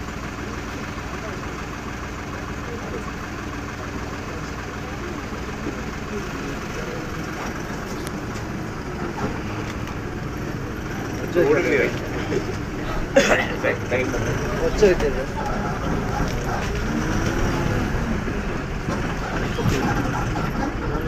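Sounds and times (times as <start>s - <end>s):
vehicle engine idling: 0.0s - 21.0s.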